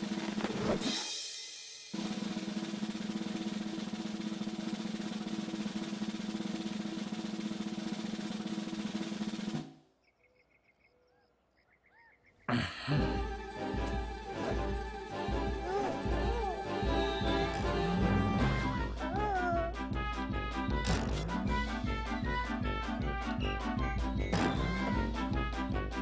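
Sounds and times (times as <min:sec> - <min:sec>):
snare drum roll: 0:01.9 - 0:09.7.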